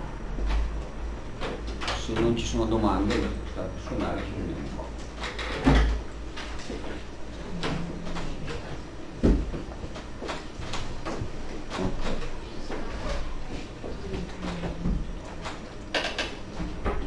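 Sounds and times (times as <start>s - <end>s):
knocks and clatter: 5.1s - 13.0s.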